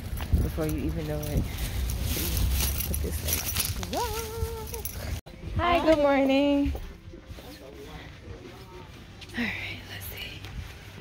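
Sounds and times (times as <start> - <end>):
woman whispering: 9.3 - 10.6.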